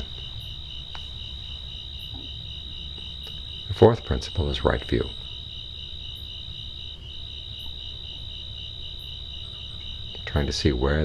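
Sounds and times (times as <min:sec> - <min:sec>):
crickets trilling: 0:00.0 - 0:11.0
faint low hum: 0:00.0 - 0:11.0.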